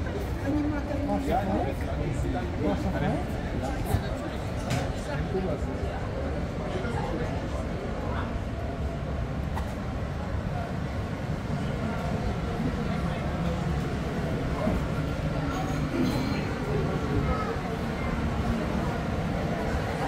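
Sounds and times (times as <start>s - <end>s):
passengers chatting indistinctly: 0.0s - 20.0s.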